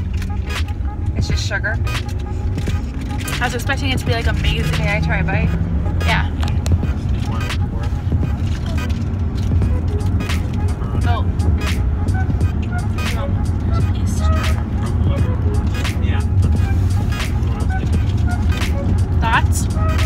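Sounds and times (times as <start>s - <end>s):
car cabin rumble: 0.0s - 20.0s
small clicks and rustles: 1.9s - 4.9s.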